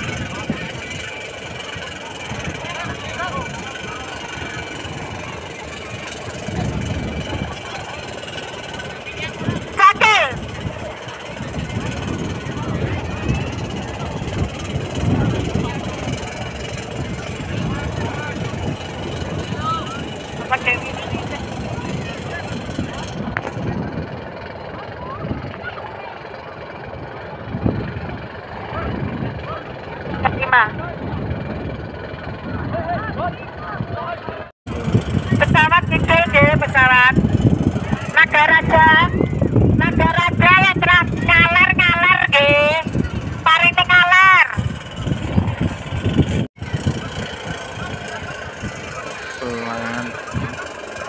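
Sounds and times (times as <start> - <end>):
wind rumbling on microphone: 0.0 - 25.8, 26.7 - 50.9
indistinct crowd voices: 0.0 - 51.0
wavering pitched shout: 9.6 - 10.6.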